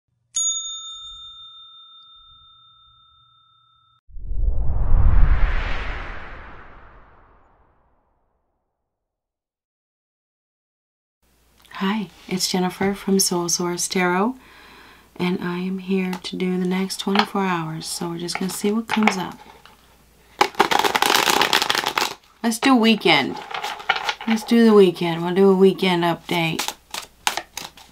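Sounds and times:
bell-like chime ringing: 0.4s - 4.0s
cards being shuffled: 20.4s - 22.2s, 23.3s - 24.6s, 26.2s - 27.9s.

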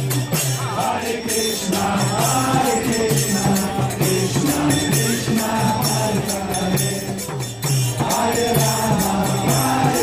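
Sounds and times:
crowd chanting call-and-response: 0.0s - 10.0s
hand drum beat: 0.0s - 10.0s
jingling hand cymbals: 0.0s - 10.0s.

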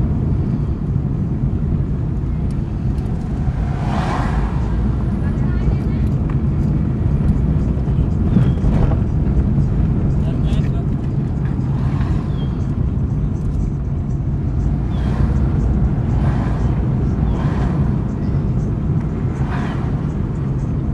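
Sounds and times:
car engine and road noise: 0.0s - 20.9s
indistinct voices: 2.6s - 6.8s.

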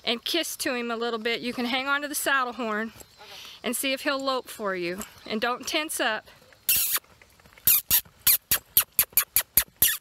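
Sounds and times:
rapid lip-kissing sounds: 6.7s - 7.1s, 7.7s - 10.0s.

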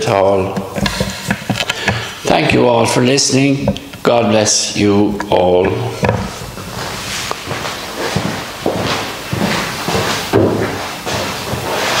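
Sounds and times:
footsteps on hard floor: 0.2s - 2.3s, 5.6s - 12.0s.

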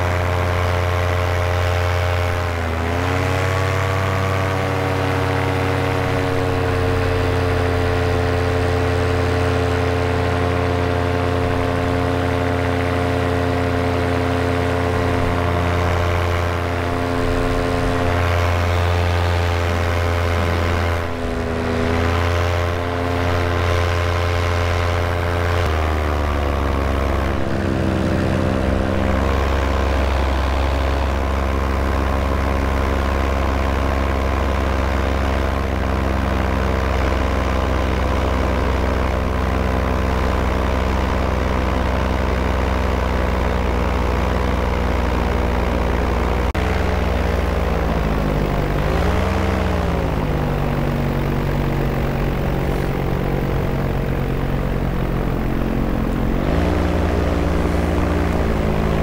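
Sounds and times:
paramotor engine and propeller: 0.0s - 59.0s.

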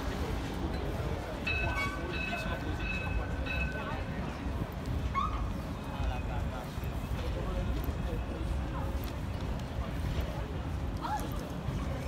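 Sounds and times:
low traffic rumble: 0.0s - 12.0s
passers-by talking: 0.0s - 12.0s.

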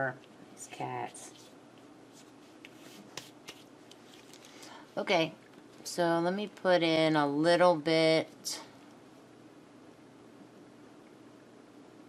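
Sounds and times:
low room hiss: 0.0s - 12.0s
soft clicks and rustles: 1.2s - 4.8s, 5.4s - 5.9s.

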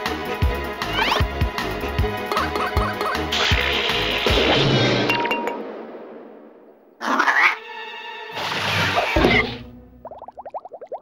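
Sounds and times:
cartoon music with drum beat: 0.0s - 5.6s.

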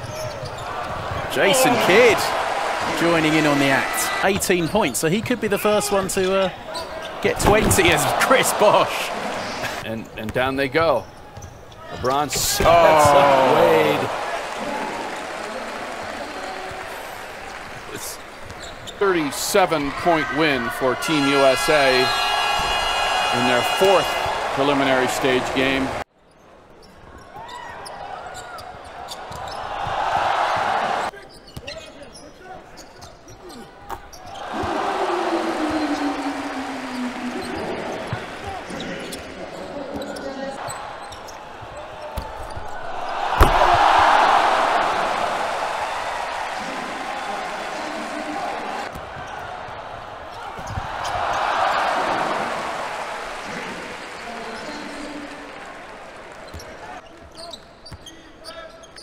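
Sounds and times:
crowd noise: 0.0s - 26.6s, 27.7s - 57.6s.

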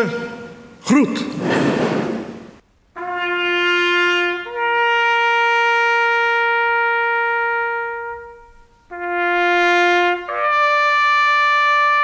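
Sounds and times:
trumpet holding a long note: 3.0s - 12.0s.

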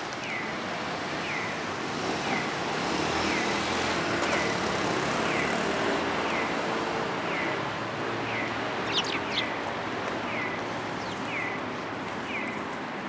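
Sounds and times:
road traffic noise: 0.0s - 13.0s.

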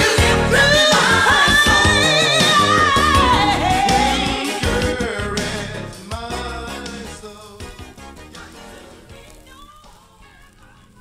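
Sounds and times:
person singing with vibrato: 0.0s - 8.0s
band accompaniment: 0.0s - 9.2s.

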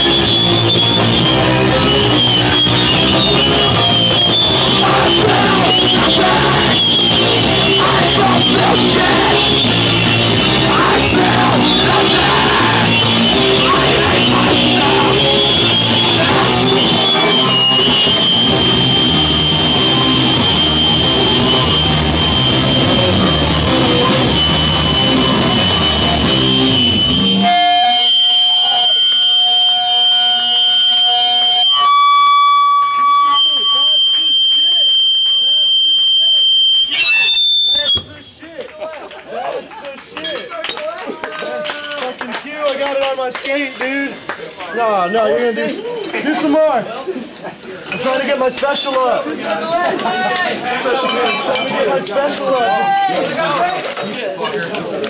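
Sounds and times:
punk band playing loud: 0.0s - 31.2s
guitar feedback whine: 0.0s - 38.2s
crowd talking: 0.0s - 55.0s.

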